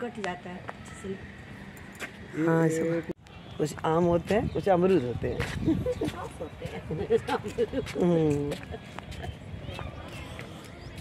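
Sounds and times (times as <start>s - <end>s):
steady outdoor noise: 0.0s - 11.0s
faint voices: 4.9s - 11.0s.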